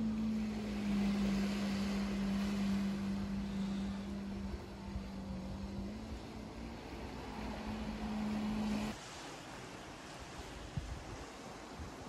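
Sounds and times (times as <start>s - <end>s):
motorboat engine droning: 0.0s - 11.8s.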